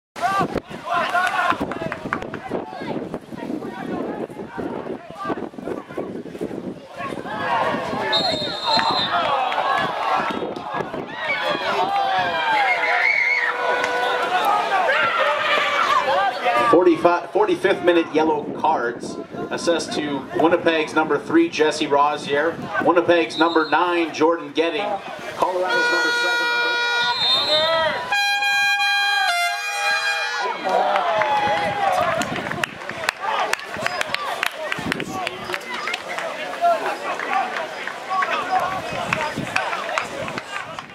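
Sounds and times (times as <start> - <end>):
players shouting and talking: 0.2 - 40.9
referee whistle blast: 8.1 - 9.3, 23.3 - 23.9, 25.6 - 30.5
horn long steady note: 25.5 - 30.6.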